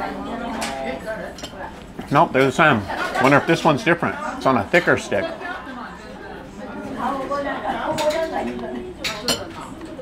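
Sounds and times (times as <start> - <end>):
soft background voices: 0.0 - 10.0
tableware clinking: 7.9 - 9.8.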